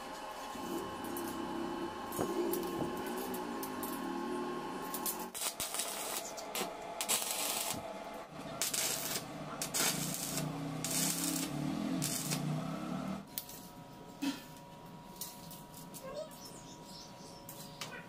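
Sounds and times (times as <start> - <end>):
arc welder crackling: 0.0 - 13.9.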